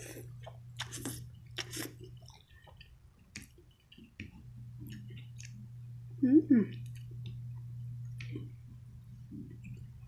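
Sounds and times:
person chewing with wet smacks: 0.0s - 5.8s, 6.7s - 10.0s.

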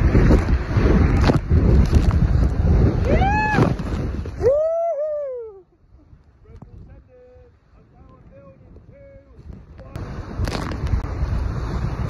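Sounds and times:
rushing water: 0.0s - 5.0s, 9.4s - 12.0s
wind buffeting microphone: 0.0s - 12.0s.

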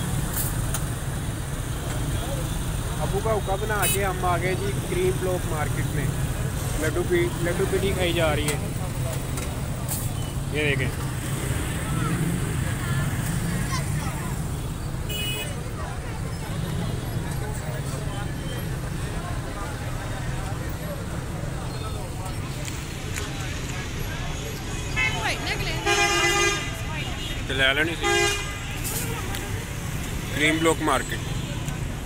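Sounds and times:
traffic rumble: 0.0s - 32.0s
vehicle horn honking: 15.1s - 15.6s, 25.0s - 29.1s.

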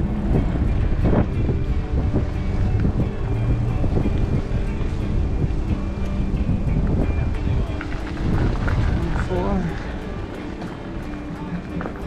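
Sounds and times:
music playing: 0.0s - 12.0s
wind rumble on microphone: 0.0s - 12.0s.

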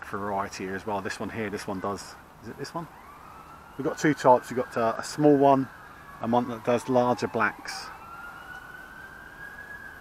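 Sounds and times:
faint distant siren: 0.4s - 10.0s.

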